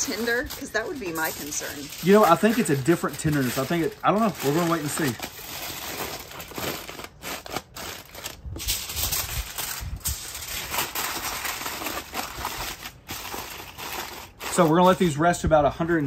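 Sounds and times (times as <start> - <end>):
aluminium foil crinkling: 0.0 - 16.0.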